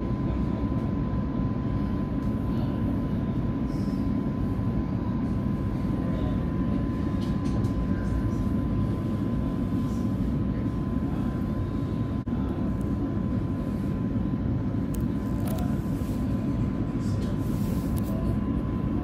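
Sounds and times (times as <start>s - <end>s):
thin constant whine: 0.0s - 19.0s.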